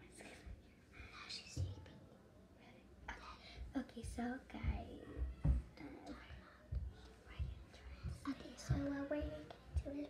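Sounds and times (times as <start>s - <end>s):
girls whispering: 0.0s - 10.0s
soft low bumps: 3.6s - 10.0s.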